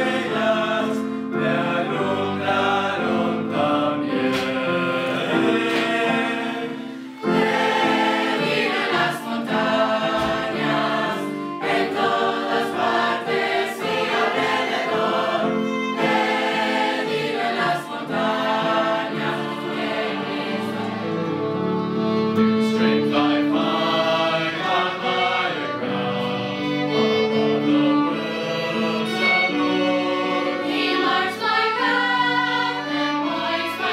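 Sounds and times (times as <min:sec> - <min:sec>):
youth choir singing: 0:00.0 - 0:33.9.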